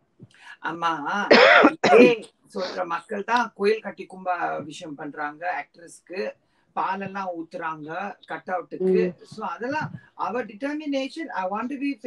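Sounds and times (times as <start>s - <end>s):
woman coughing: 1.3s - 2.8s
woman talking: 1.8s - 2.9s, 8.8s - 10.0s.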